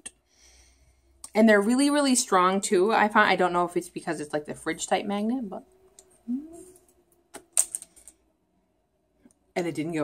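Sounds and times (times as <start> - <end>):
person humming: 6.2 - 6.8.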